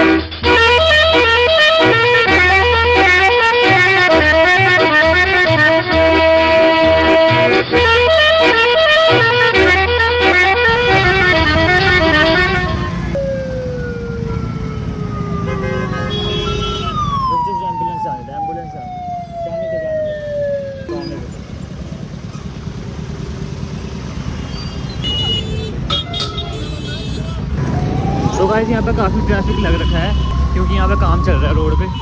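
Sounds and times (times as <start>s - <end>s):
traffic engines running: 0.0s - 32.0s.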